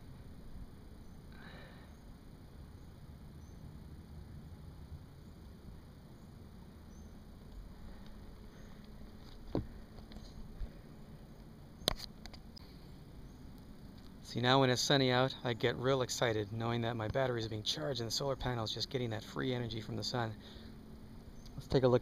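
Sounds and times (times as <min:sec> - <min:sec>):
faint outdoor background: 0:00.0 - 0:22.0.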